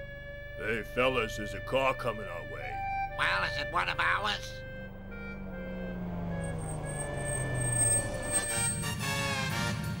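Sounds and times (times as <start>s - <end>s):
background music: 0.0s - 10.0s
cartoon car engine approaching: 2.2s - 10.0s.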